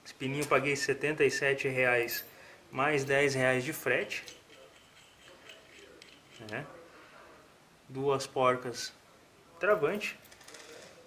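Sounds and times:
small steel parts clicking: 4.1s - 6.6s.

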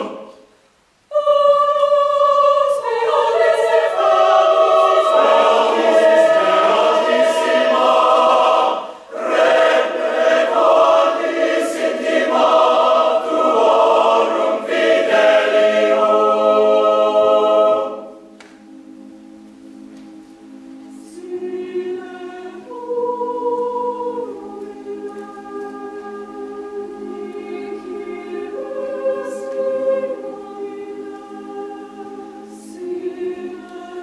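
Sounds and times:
mixed choir singing unaccompanied: 0.0s - 18.4s, 20.9s - 34.0s.

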